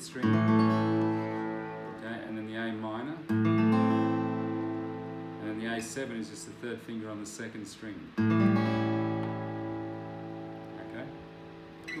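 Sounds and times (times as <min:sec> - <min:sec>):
acoustic guitar chord strummed: 0:00.0 - 0:06.8, 0:08.1 - 0:12.0.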